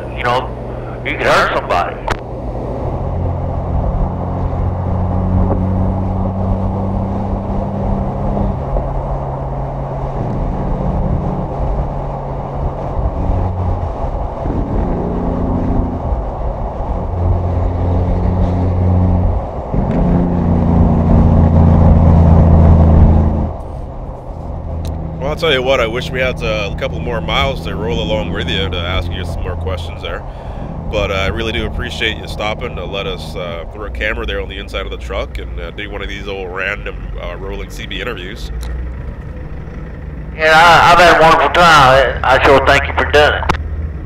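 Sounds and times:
road noise: 0.0 - 44.0
truck diesel engine droning: 0.0 - 44.0.

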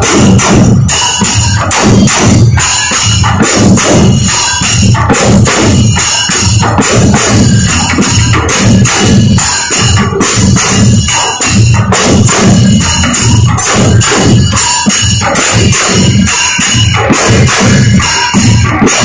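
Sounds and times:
barrel drums beaten with sticks: 0.0 - 19.0.

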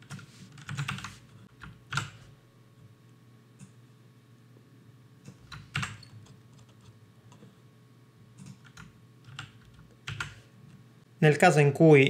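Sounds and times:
computer keyboard keystrokes: 0.0 - 2.2, 5.2 - 6.9, 8.4 - 10.4.

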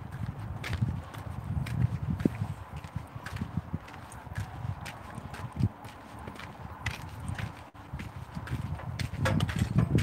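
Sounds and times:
footsteps on dirt track: 0.0 - 10.0.

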